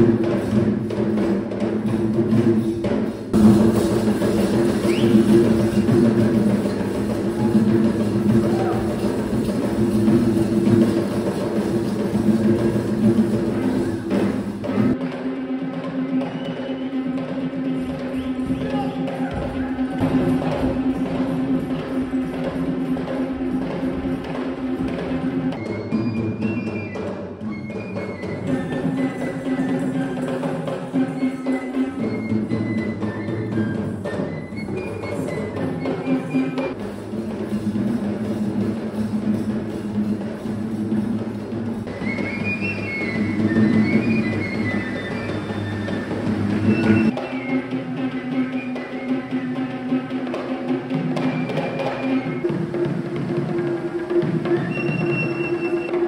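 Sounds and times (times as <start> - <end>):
hand drums fast rhythm: 0.0 - 15.2, 17.0 - 26.8.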